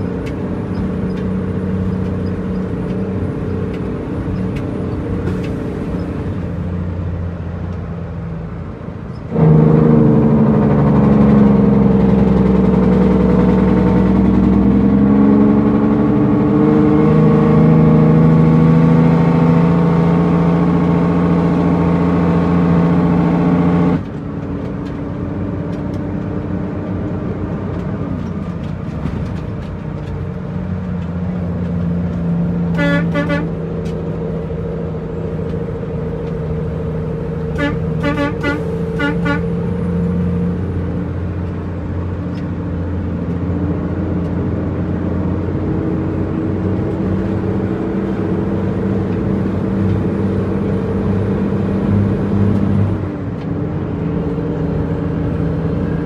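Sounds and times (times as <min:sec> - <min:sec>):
diesel engine drone: 0:00.0 - 0:56.0
truck horn toots: 0:32.6 - 0:33.8, 0:37.4 - 0:40.0.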